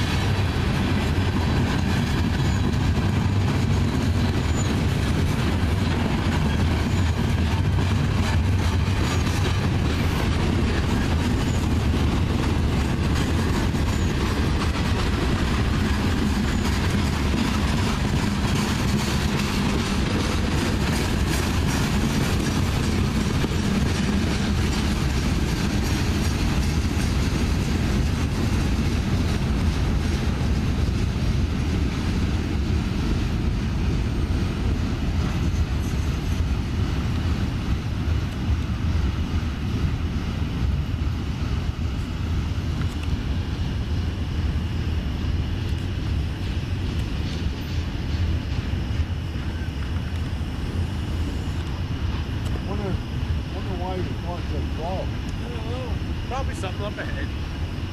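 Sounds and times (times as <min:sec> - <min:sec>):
train wheels rumbling on rail: 0:00.0 - 0:57.9.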